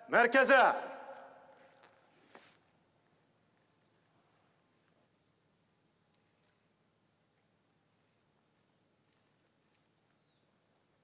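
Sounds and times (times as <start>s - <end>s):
echo of shouted command: 0.0s - 1.6s.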